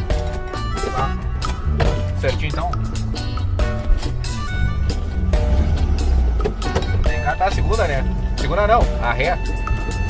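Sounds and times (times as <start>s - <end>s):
background music with beat: 0.0s - 10.0s
car engine running: 1.3s - 10.0s.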